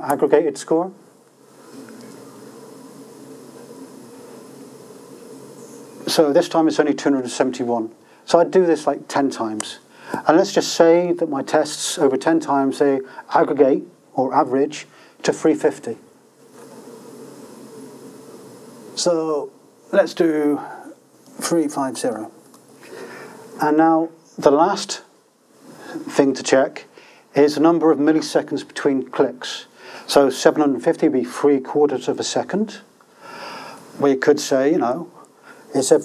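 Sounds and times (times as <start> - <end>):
lecture hall background hum: 0.0 - 36.0.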